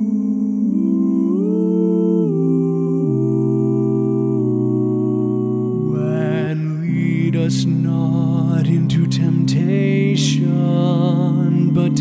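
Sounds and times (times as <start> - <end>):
a cappella voices singing chords: 0.0 - 12.0.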